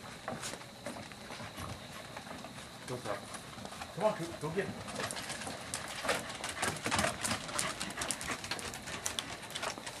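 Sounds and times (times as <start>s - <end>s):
dog claws clicking on wood: 4.8s - 10.0s.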